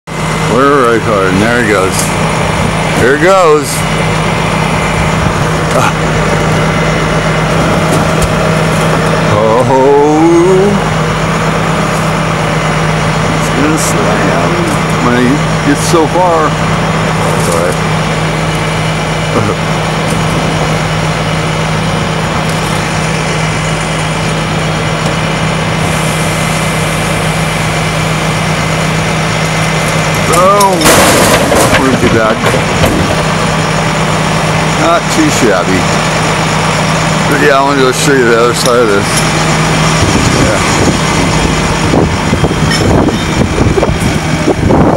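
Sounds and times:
truck engine running: 0:00.1 - 0:44.9
winch pulling cables: 0:00.2 - 0:44.9
trailer slamming and rattling: 0:24.8 - 0:44.9.

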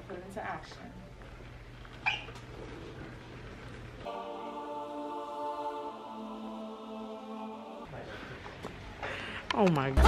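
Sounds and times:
low background hum: 0:00.0 - 0:10.0
short high-pitched squeak: 0:02.0 - 0:02.3.

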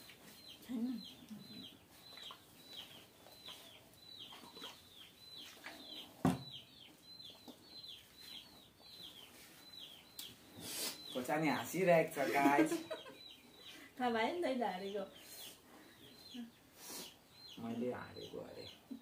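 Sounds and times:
birds peeping faintly: 0:00.0 - 0:19.0.

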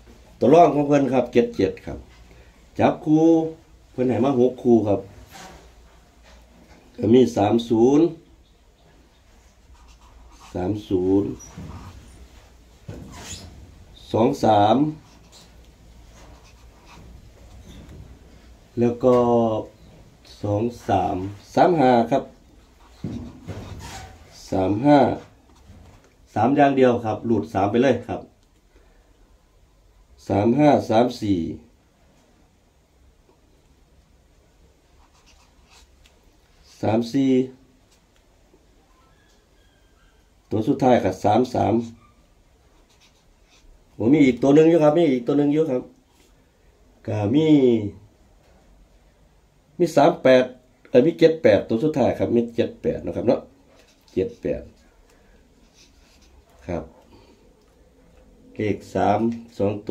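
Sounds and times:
man speaking: 0:00.4 - 0:02.1, 0:02.8 - 0:05.1, 0:06.9 - 0:08.2, 0:10.4 - 0:11.7, 0:14.0 - 0:15.1, 0:18.7 - 0:22.4, 0:24.4 - 0:25.3, 0:44.0 - 0:46.0, 0:47.0 - 0:48.0, 0:49.8 - 0:54.9, 0:56.6 - 0:57.0, 0:58.5 - 0:59.9
marker writing on paper: 0:09.6 - 0:12.0, 0:15.0 - 0:17.1.

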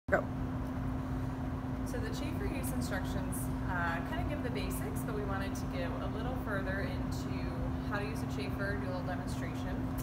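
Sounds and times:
faint hum: 0:00.1 - 0:10.0
low background rumble: 0:00.1 - 0:10.0.

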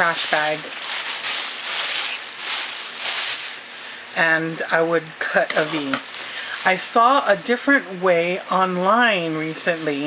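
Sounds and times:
plastic bag crinkling: 0:00.0 - 0:08.2, 0:09.2 - 0:10.0.

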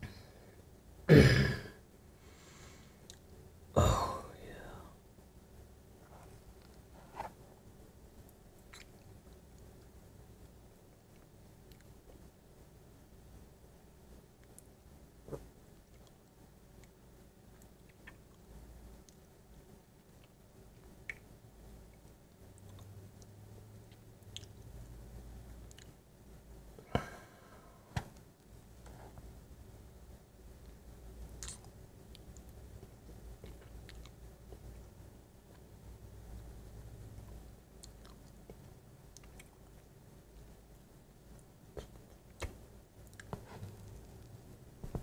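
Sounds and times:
low steady hum: 0:00.0 - 0:45.0
man whispering: 0:03.8 - 0:05.0
lip clicks: 0:08.6 - 0:09.7, 0:20.2 - 0:21.3, 0:31.4 - 0:34.2
wet mouth eating sounds: 0:08.6 - 0:09.7, 0:16.8 - 0:18.4, 0:31.4 - 0:34.6, 0:37.2 - 0:39.9.

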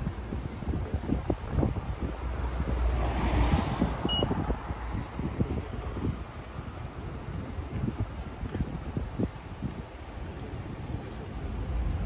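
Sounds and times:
wind buffeting microphone: 0:00.0 - 0:12.0
vehicle passing: 0:02.4 - 0:05.0.

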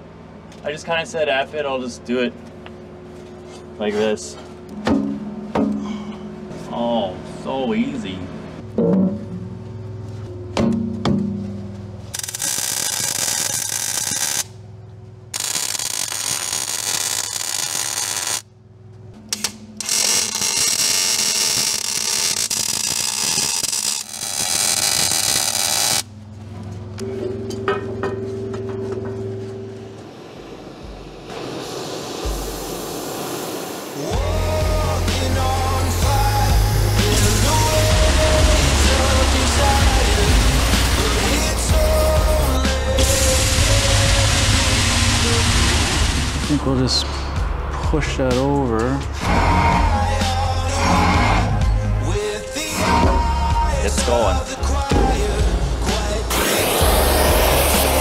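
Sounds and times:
harsh hissing metalworking noise: 0:12.2 - 0:14.5, 0:15.4 - 0:18.4, 0:19.8 - 0:26.1, 0:30.5 - 0:47.4, 0:48.3 - 0:58.0
background music with low beat: 0:34.1 - 0:49.2, 0:51.5 - 0:58.0.

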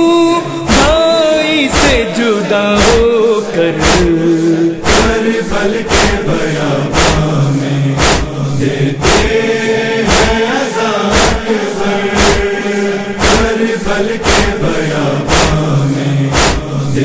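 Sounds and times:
chorus chanting a wavering drone: 0:00.0 - 0:17.0
rhythmic hand-on-chest beats: 0:00.0 - 0:17.0.

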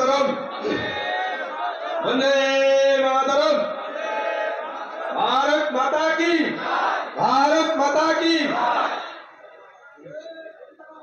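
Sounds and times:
scattered lower voices: 0:00.0 - 0:05.5
crowd shouting in unison: 0:00.4 - 0:02.2, 0:03.7 - 0:05.3, 0:06.5 - 0:07.2, 0:08.5 - 0:09.5.

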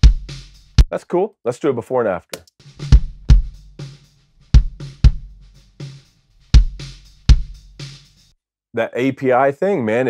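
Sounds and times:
deep kick drum hits: 0:00.0 - 0:00.4, 0:02.8 - 0:03.8, 0:04.5 - 0:05.4, 0:06.6 - 0:07.6.

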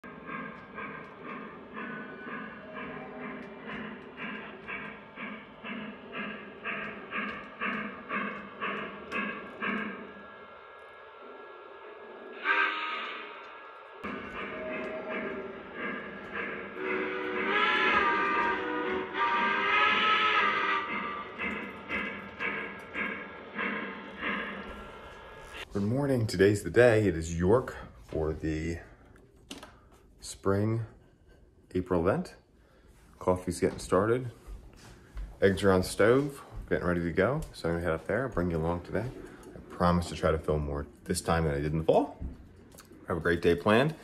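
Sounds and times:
model steam locomotive chuffing: 0:00.0 - 0:28.9, 0:35.4 - 0:42.2, 0:43.0 - 0:44.0
wavering train whistle blasts: 0:12.3 - 0:22.6.

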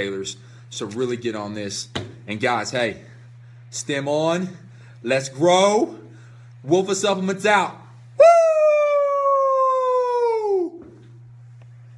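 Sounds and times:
man howling like a wolf: 0:08.2 - 0:10.8.

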